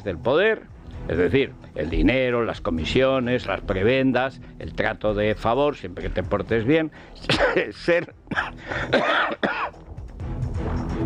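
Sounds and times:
man coughing: 0:07.2 - 0:09.8.

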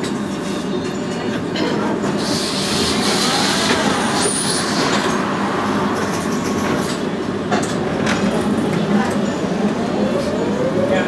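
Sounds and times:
tram running rumble: 0:00.0 - 0:11.0.

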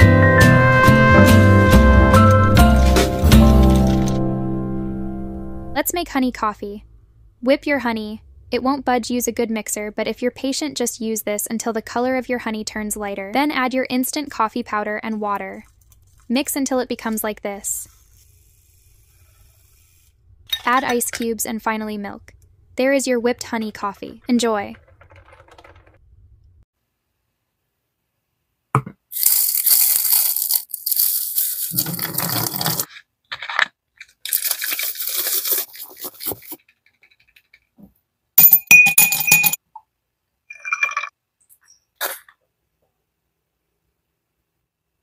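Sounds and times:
ice cubes clinking in glass: 0:02.7 - 0:04.2, 0:29.2 - 0:32.8, 0:38.4 - 0:39.6, 0:40.5 - 0:41.1
milk frother whirring: 0:17.9 - 0:20.2.

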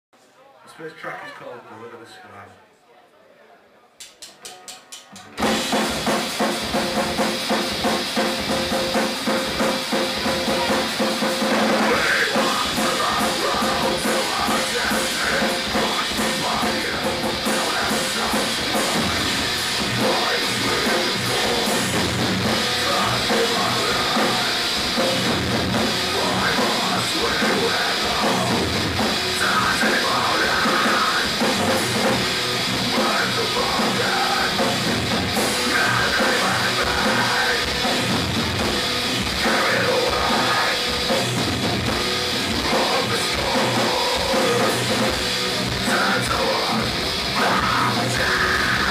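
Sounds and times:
drum kit: 0:04.0 - 0:48.9
distorted guitars: 0:04.3 - 0:48.9
metal band playing: 0:04.3 - 0:48.9.

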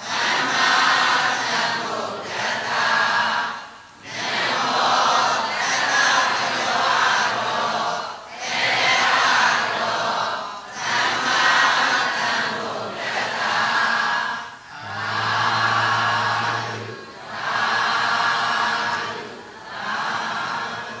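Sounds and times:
group of voices chanting: 0:00.0 - 0:21.0.

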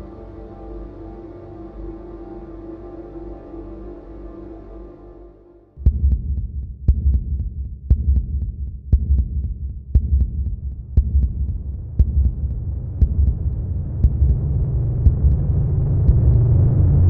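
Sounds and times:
deep low pulsing drone: 0:00.0 - 0:06.5, 0:10.0 - 0:17.0.

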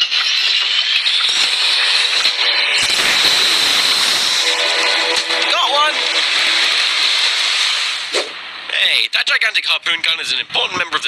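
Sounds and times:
loud hissing rush: 0:02.8 - 0:04.8.

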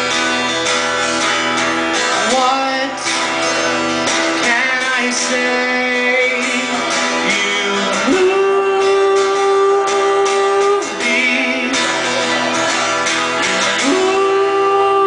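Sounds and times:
strummed acoustic guitar: 0:00.0 - 0:15.0
man singing: 0:01.9 - 0:15.0.

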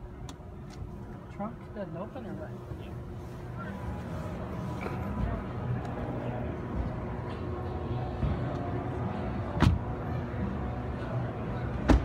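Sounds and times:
crowd voices: 0:02.4 - 0:12.0
car door shutting: 0:09.6 - 0:09.9.

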